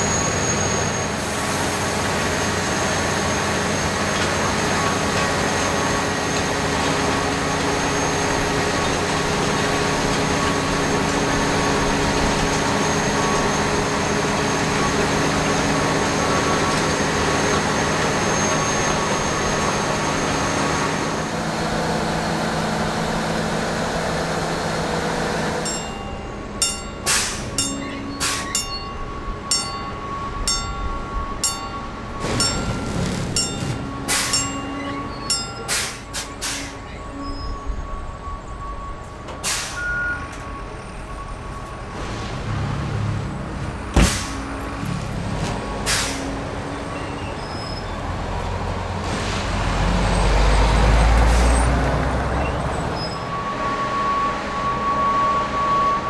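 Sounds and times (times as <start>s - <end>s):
track-tamping machine humming: 1.9s - 36.9s
sharp knocks and clanks: 25.7s - 36.2s.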